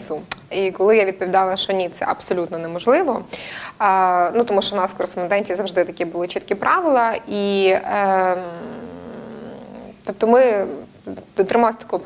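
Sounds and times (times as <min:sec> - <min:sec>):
woman speaking: 0:00.0 - 0:08.8, 0:10.0 - 0:12.0
woman's drawn-out hesitation vowel: 0:07.5 - 0:10.0.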